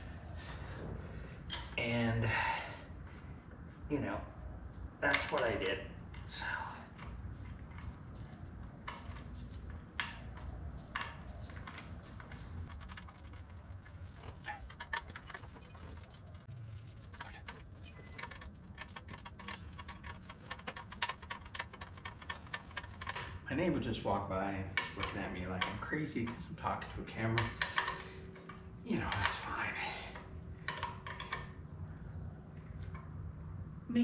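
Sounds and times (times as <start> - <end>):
low steady hum: 0.0 - 34.0
metal clicks of hand tools: 17.1 - 23.4, 24.7 - 26.6, 27.3 - 29.5, 30.1 - 31.6.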